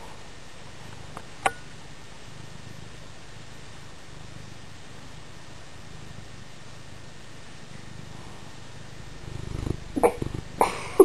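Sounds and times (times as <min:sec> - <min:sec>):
cat purring: 0:00.0 - 0:11.0.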